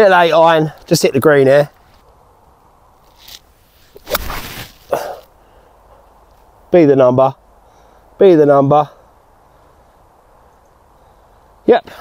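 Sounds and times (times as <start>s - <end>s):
golf club swishing through grass: 3.0s - 5.3s.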